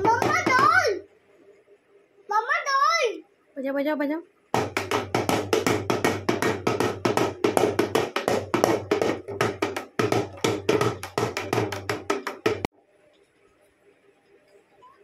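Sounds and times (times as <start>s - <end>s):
dhol drum beating fast: 0.0s - 0.8s, 4.6s - 12.7s.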